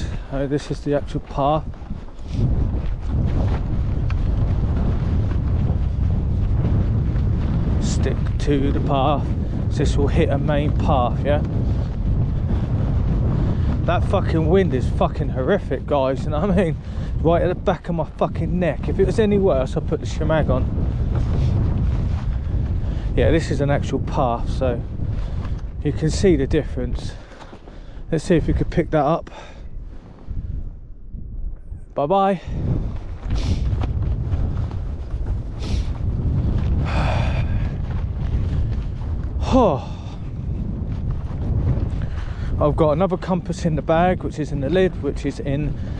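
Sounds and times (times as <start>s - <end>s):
wind buffeting microphone: 0.0s - 45.9s
breathy rustle: 27.1s - 28.1s.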